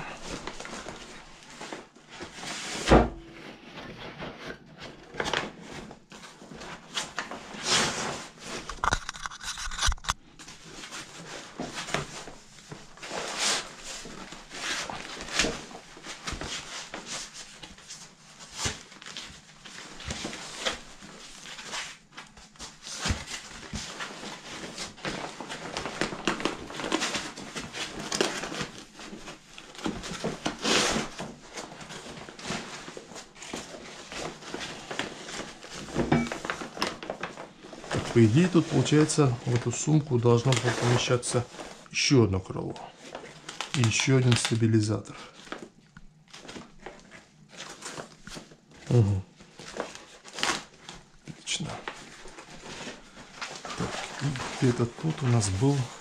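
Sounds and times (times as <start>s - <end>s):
rustling scraping and clicking: 0.0s - 41.9s, 49.4s - 56.0s.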